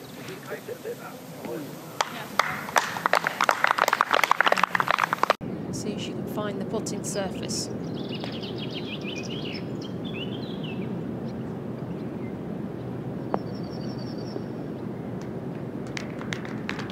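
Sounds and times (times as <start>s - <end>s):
birds chirping: 0.0s - 16.9s.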